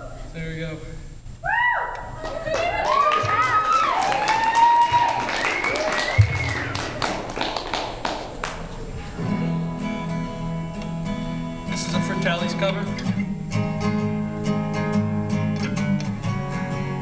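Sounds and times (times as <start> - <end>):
audience whooping and cheering: 1.4 - 8.0
scattered clapping: 2.2 - 8.8
acoustic guitar chord ringing: 9.1 - 17.0.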